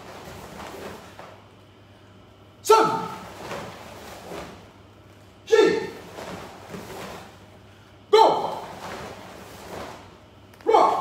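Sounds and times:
sharp kiai shouts: 2.6s - 3.4s, 5.4s - 6.1s, 8.1s - 8.8s, 10.6s - 11.0s.

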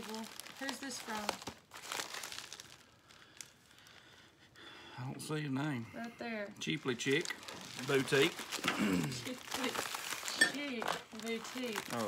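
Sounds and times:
plastic mailer crinkling: 0.0s - 3.6s, 6.6s - 12.0s.

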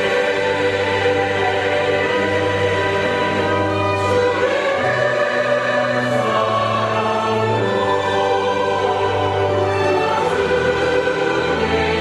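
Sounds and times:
chamber orchestra: 0.0s - 12.0s
choir singing sustained chords: 0.0s - 12.0s.

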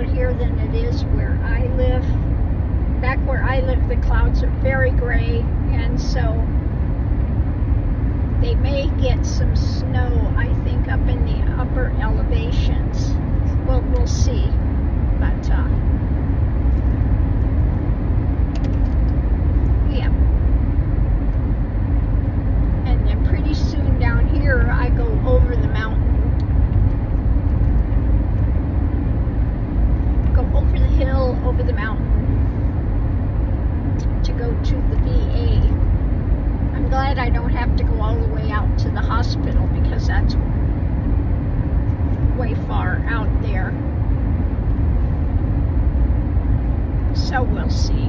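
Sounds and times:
road and tyre rumble: 0.0s - 48.0s.

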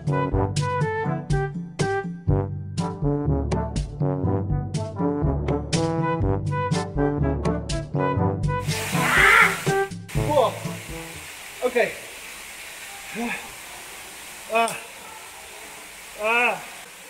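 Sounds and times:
brass music: 0.0s - 11.2s
waterfall rushing: 8.6s - 17.0s
man exclaiming ah: 9.0s - 10.6s, 13.2s - 13.5s, 14.5s - 14.9s, 16.2s - 16.8s.

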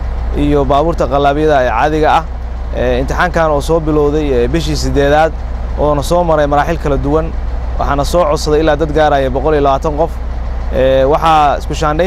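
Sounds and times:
low hum: 0.0s - 12.0s
man speaking into a microphone: 0.3s - 12.0s.

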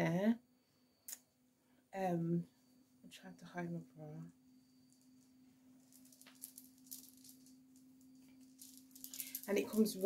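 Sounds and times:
hair beads clicking: 4.8s - 10.0s.

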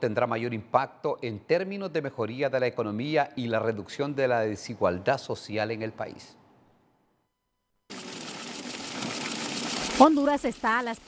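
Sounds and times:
banknote counting machine whirring: 7.9s - 11.0s.

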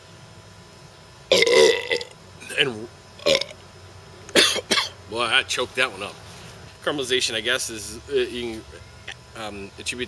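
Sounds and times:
man belching: 1.3s - 3.6s.

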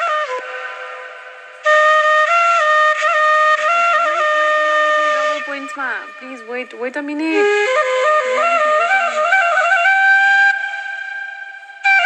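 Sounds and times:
bamboo flute playing: 0.0s - 12.0s.

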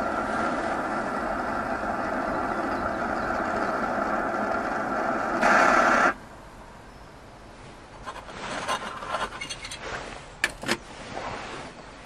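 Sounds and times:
camp stove roaring: 0.0s - 6.2s.

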